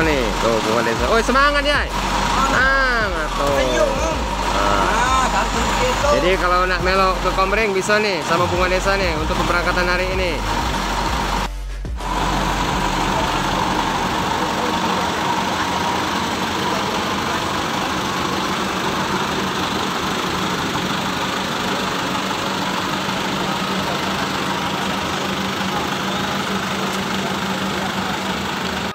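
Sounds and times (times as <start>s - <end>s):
bus diesel engine running: 0.0s - 28.9s.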